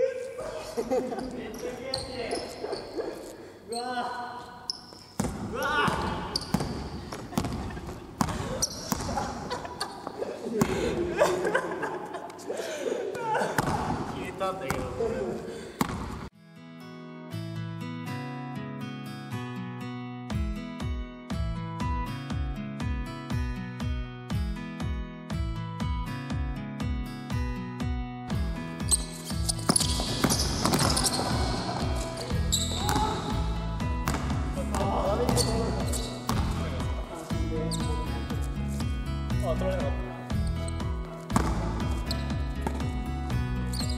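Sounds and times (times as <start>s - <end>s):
basketball bouncing on hardwood floor: 5.2s - 9.2s, 29.5s - 31.6s, 34.0s - 36.5s, 41.3s - 43.0s
acoustic guitar music: 16.3s - 43.9s.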